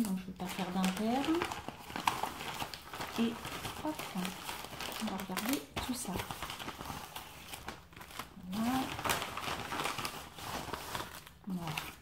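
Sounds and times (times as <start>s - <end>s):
paper envelope rustling: 0.0s - 12.0s.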